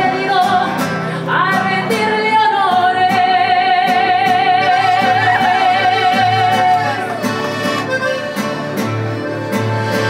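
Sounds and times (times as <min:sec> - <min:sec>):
woman singing with vibrato: 0:00.0 - 0:07.2
acoustic guitar: 0:00.0 - 0:10.0
button accordion: 0:04.4 - 0:10.0.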